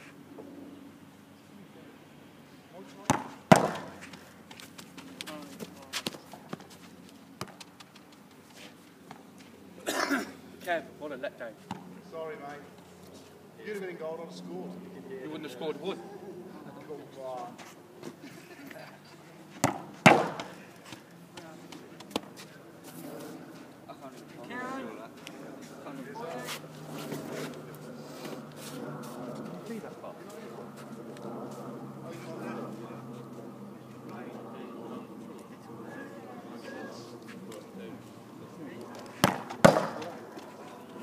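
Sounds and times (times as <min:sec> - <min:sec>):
football kick thud: 0:03.1 - 0:03.9, 0:19.6 - 0:20.5
ball striking with bang: 0:03.1 - 0:04.0, 0:19.6 - 0:20.6, 0:39.2 - 0:40.2.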